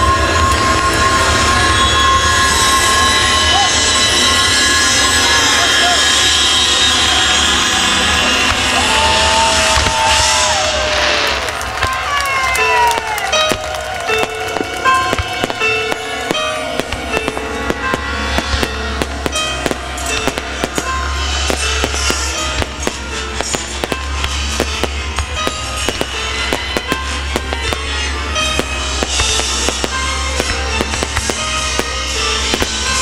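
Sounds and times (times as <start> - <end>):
fireworks bursting: 0.0 - 33.0
music: 0.0 - 33.0.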